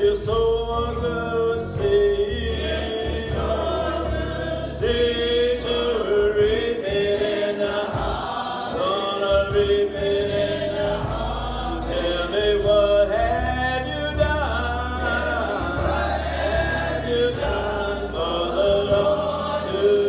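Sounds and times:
group singing gospel song: 0.0 - 20.0.

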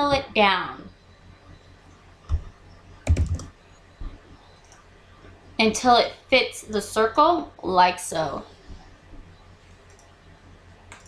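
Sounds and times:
computer keyboard typing: 3.0 - 3.5.

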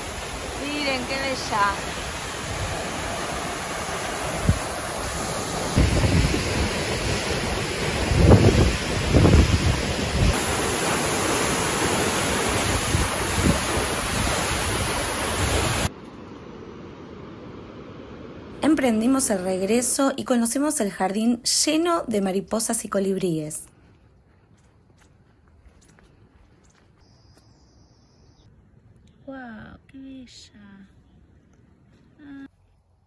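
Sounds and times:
distant hiss: 0.0 - 8.1
waterfall rushing: 0.0 - 15.9
wind buffeting microphone: 4.2 - 10.6.

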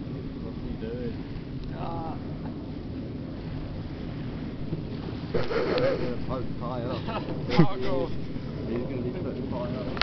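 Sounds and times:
wind buffeting microphone: 0.0 - 10.0
people laughing: 6.8 - 8.0.

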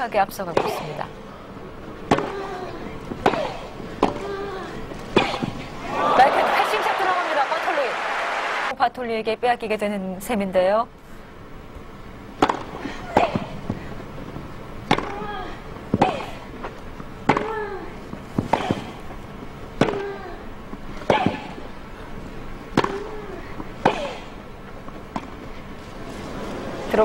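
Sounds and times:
racquet hitting tennis ball: 12.4 - 13.5, 14.9 - 15.2, 17.2 - 17.6, 19.8 - 20.1, 22.7 - 23.2.

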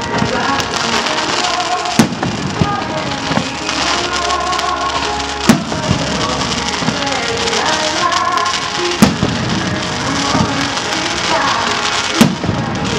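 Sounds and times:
fireworks bursting with sharp bangs: 0.0 - 12.9
fireworks crackle: 0.0 - 12.9
music: 0.0 - 12.9.

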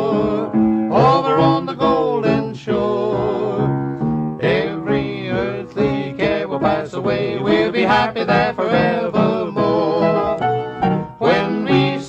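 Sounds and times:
two men singing gospel duet: 0.0 - 10.6, 11.2 - 12.0
instrumental accompaniment: 3.3 - 12.0.

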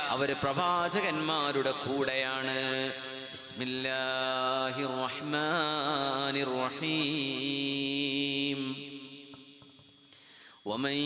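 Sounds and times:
man chanting melodically: 0.0 - 9.7, 10.6 - 11.0.

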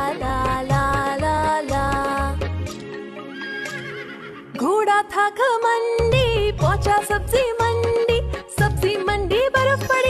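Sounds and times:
instrumental children's music: 0.0 - 4.3, 5.6 - 10.0
horse whinnying: 3.2 - 4.6.

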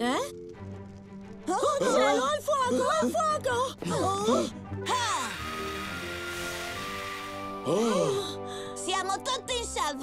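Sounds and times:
background music: 0.0 - 10.0
fire extinguisher hissing: 4.8 - 8.7.

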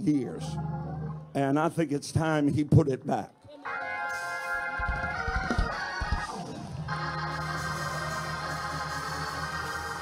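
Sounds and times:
organ chord: 6.7 - 10.0.

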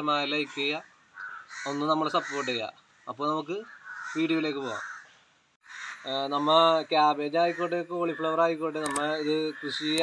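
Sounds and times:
man talking: 0.0 - 0.9, 1.6 - 4.8, 6.0 - 10.0.

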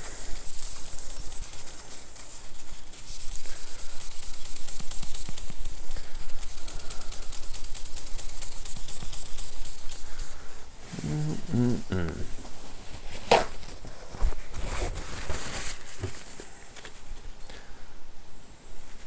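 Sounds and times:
cloth rubbing on a screen: 0.0 - 11.8, 12.4 - 17.2.

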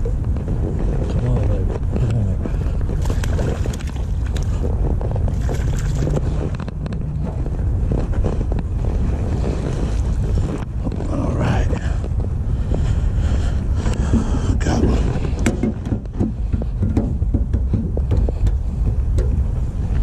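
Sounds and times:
wind buffeting microphone: 0.0 - 20.0
light knocks and handling noise: 13.9 - 20.0.

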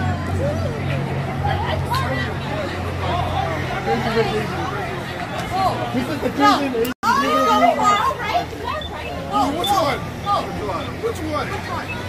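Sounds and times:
excited group chatter: 0.0 - 12.0.

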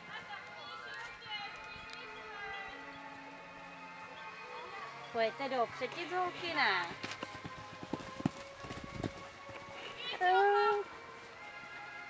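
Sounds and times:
faint background music: 0.0 - 12.0
horse hoofbeats on sand: 5.9 - 10.8.

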